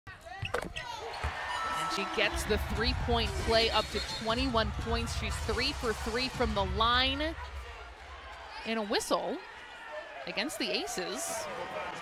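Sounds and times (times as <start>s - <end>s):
murmur of crowd: 0.9s - 12.0s.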